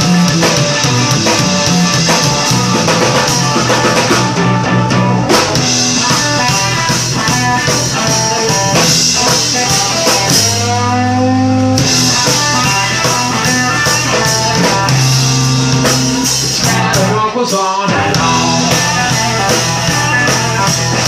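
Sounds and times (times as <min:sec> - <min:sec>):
drum kit: 0:00.0 - 0:21.0
electric guitar: 0:00.0 - 0:21.0.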